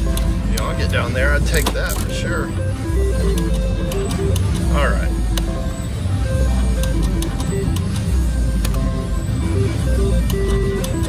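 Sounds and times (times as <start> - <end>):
electronic slot machine tones: 0.0 - 11.0
loud background music: 0.0 - 11.0.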